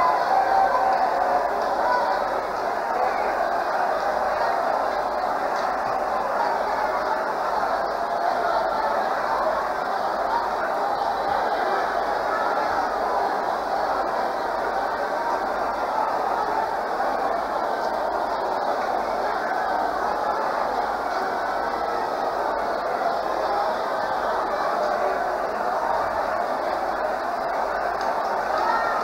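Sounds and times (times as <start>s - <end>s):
congregation praying aloud: 0.0s - 29.0s.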